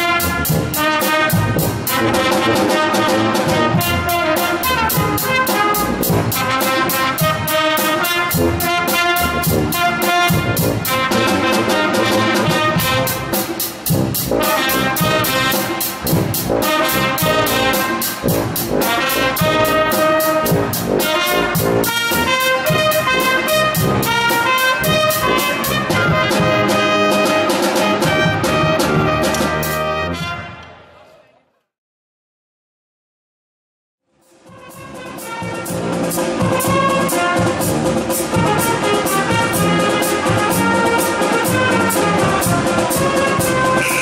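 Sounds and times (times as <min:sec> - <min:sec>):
drums beating a steady pulse: 0:00.0 - 0:29.9, 0:34.2 - 0:44.0
pep band playing: 0:00.0 - 0:30.6, 0:34.2 - 0:44.0.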